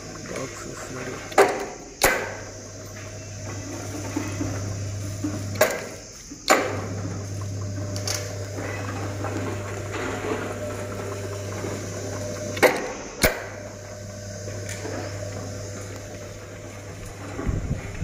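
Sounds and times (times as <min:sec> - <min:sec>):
rolling shutter motor humming: 0:00.0 - 0:18.0.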